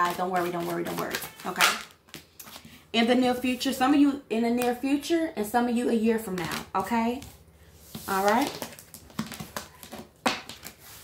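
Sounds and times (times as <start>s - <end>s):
cards shuffling: 0.0s - 2.8s, 6.3s - 11.0s.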